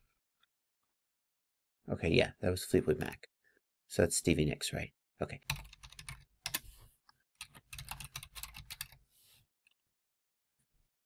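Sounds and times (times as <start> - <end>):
typing on computer keyboard: 5.5 - 6.6, 7.4 - 9.0.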